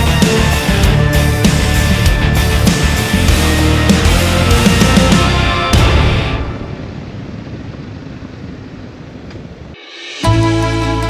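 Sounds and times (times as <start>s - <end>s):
motorcycle engine: 0.0s - 10.4s
road noise: 0.0s - 11.0s
wind noise: 1.1s - 9.9s.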